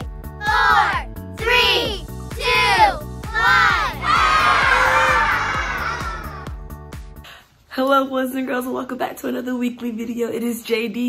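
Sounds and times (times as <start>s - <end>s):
upbeat background music: 0.0s - 9.7s
children shouting a number: 0.4s - 6.4s
children cheering: 2.4s - 6.5s.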